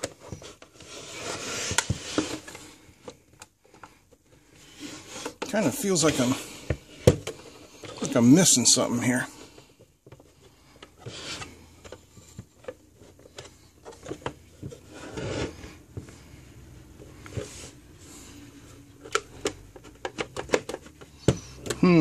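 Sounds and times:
plastic rubbing and scraping: 0:00.0 - 0:21.8.

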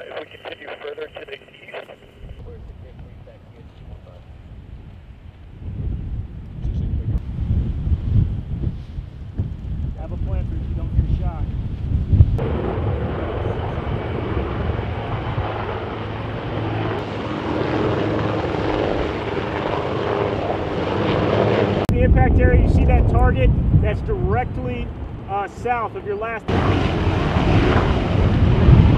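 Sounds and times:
wind rumbling on microphone: 0:02.0 - 0:25.6, 0:26.5 - 0:28.9
helicopter engine and rotor: 0:12.4 - 0:21.9, 0:24.9 - 0:28.9.

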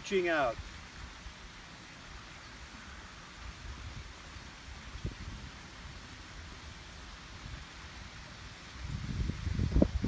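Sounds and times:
faint hiss: 0:00.0 - 0:10.0
wind rumbling on microphone: 0:03.3 - 0:10.0.

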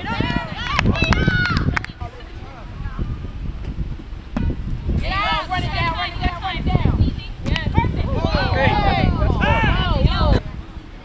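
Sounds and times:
wind buffeting microphone: 0:00.0 - 0:11.0
short thump: 0:03.6 - 0:04.7.

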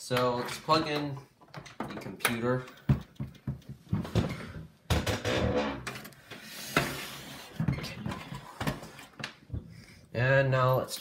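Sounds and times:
cables plugging clicks and knocks: 0:00.1 - 0:06.2.

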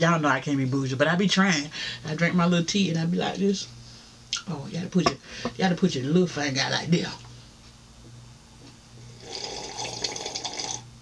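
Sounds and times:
slurping sip of hot tea: 0:09.0 - 0:10.8.

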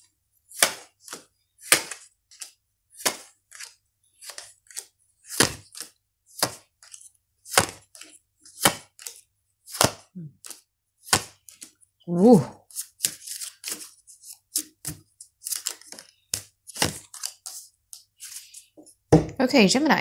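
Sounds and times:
cards landing with sharp slap: 0:00.6 - 0:03.7, 0:05.3 - 0:06.7, 0:07.5 - 0:08.0, 0:08.6 - 0:11.6, 0:14.8 - 0:17.4
cards shuffled by hand: 0:00.6 - 0:11.8, 0:12.6 - 0:18.8.

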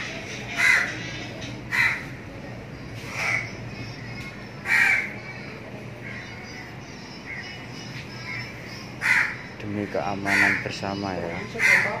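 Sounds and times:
low background hum: 0:00.0 - 0:12.0
crow cawing: 0:00.6 - 0:01.0, 0:01.7 - 0:02.1, 0:03.1 - 0:03.5, 0:04.6 - 0:05.2, 0:09.0 - 0:10.8, 0:11.4 - 0:12.0.

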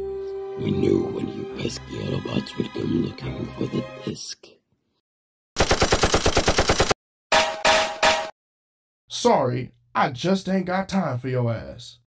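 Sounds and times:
rapid automatic gunfire: 0:05.6 - 0:07.0.

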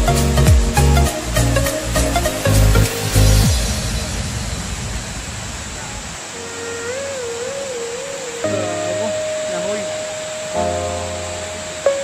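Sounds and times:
held lead note and chord: 0:00.0 - 0:04.2, 0:06.3 - 0:12.0
waterfall rushing hiss: 0:00.1 - 0:12.0.

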